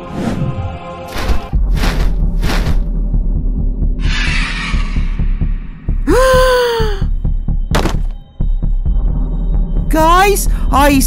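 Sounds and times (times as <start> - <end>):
low heartbeat-like throbbing: 1.2 - 4.0.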